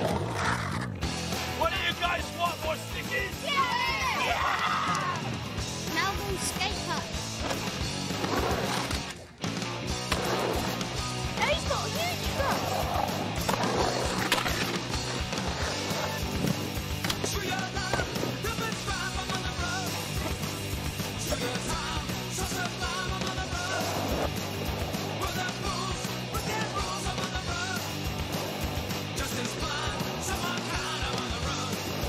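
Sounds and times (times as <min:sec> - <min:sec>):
music: 0:00.0 - 0:32.0
skateboard wheels rolling on concrete: 0:00.0 - 0:32.0
voices: 0:11.3 - 0:13.0.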